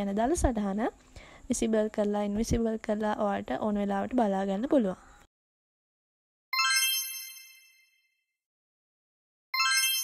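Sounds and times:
sparkly chime: 6.6s - 8.1s, 9.6s - 10.0s.

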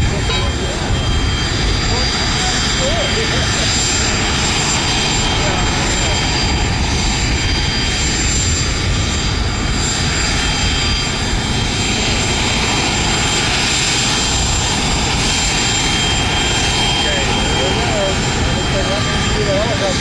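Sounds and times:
helicopter turbine engine running: 0.0s - 20.0s.

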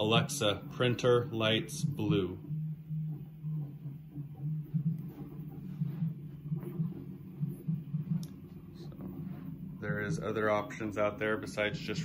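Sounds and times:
low pulsing hum: 0.0s - 12.0s.

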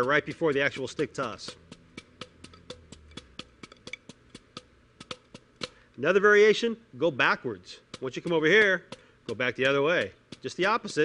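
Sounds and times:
drumsticks striking a practice pad: 0.0s - 5.8s, 7.8s - 11.0s.

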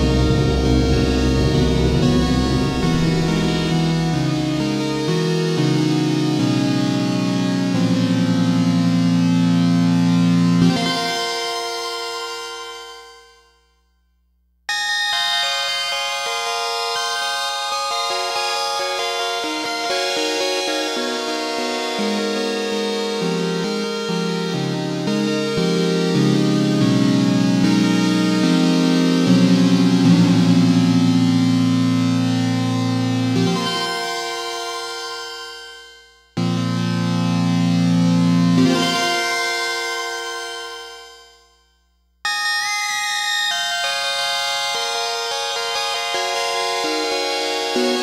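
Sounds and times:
synthesizer sustained chords: 0.0s - 11.1s.

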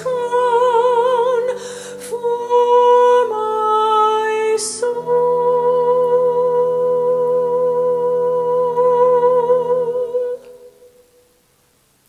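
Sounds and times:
woman singing hymn note: 0.0s - 11.1s
low sustained chord: 0.0s - 11.4s.

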